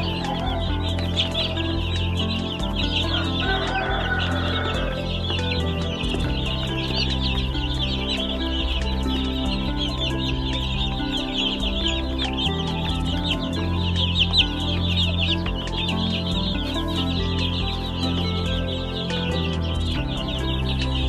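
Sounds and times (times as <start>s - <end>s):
baby chicks peeping: 0.0s - 21.0s
background music: 0.0s - 21.0s.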